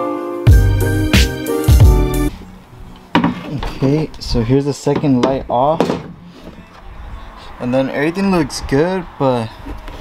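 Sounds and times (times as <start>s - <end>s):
piano music: 0.0s - 3.2s
man talking: 3.6s - 6.0s, 7.6s - 9.6s.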